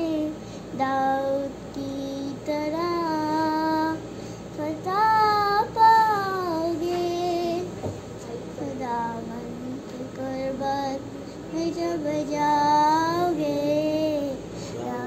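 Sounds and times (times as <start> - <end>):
girl singing unaccompanied: 0.0 - 15.0.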